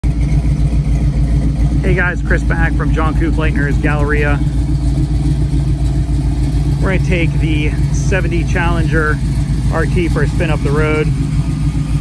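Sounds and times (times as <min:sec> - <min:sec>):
car engine idling: 0:00.0 - 0:12.0
man's voice: 0:01.8 - 0:04.5, 0:06.8 - 0:11.1.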